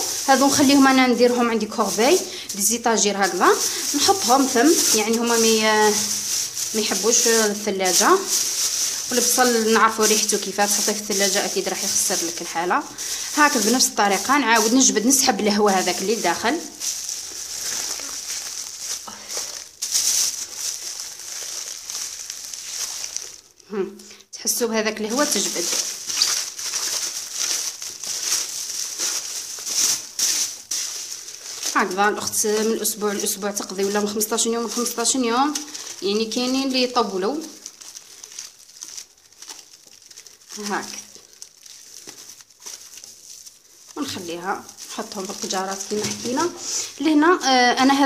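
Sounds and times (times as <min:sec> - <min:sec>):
plastic crinkling: 0:00.0 - 0:48.0
air sucked from plastic bag hissing: 0:01.4 - 0:02.7, 0:03.3 - 0:10.6, 0:12.8 - 0:13.6, 0:46.5 - 0:47.0.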